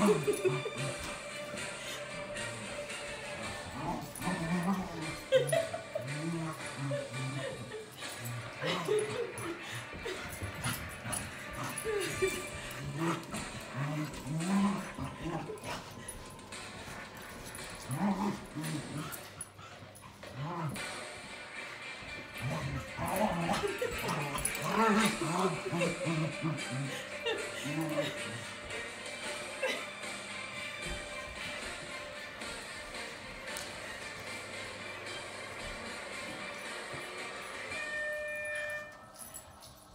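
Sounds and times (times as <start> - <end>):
background music: 0.0 - 39.9
timer held tone: 37.7 - 39.4.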